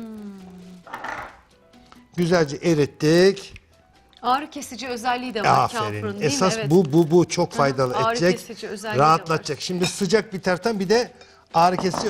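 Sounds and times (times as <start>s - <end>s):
man humming: 0.0s - 0.8s.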